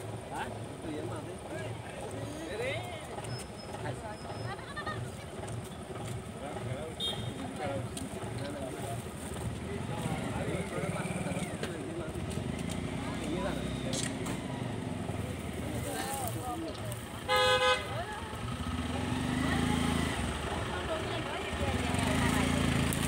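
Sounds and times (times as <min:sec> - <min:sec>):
low engine hum: 0:00.0 - 0:23.0
people talking: 0:00.2 - 0:23.0
vehicle horn toot: 0:07.0 - 0:07.4, 0:17.2 - 0:18.0.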